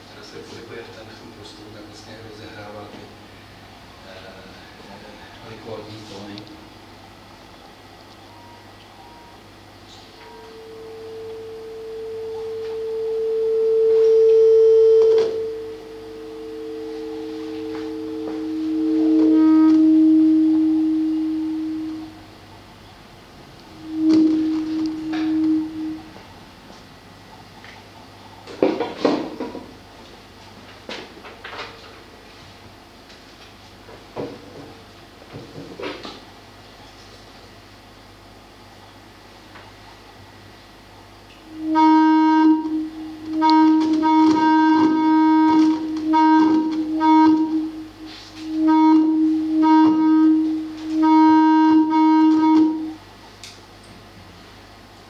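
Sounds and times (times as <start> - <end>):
buzzy feedback tone: 8.3 - 22.6, 23.4 - 26.7, 41.4 - 53.0.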